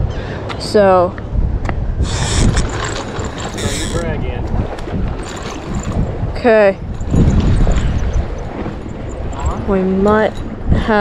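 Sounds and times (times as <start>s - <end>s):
hissing wind gusts: 0.0s - 11.0s
wind buffeting microphone: 0.0s - 11.0s.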